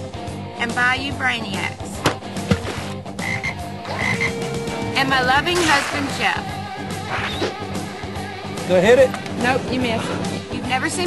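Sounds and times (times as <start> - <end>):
frogs croaking: 3.1 - 4.6.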